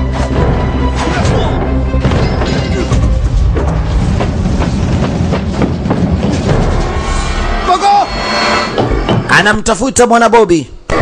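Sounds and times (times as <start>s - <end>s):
train rumble: 3.3s - 7.4s.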